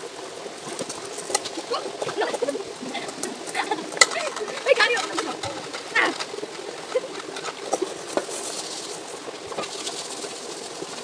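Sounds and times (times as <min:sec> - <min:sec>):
metal pots knocking and scraping: 0:00.6 - 0:11.0.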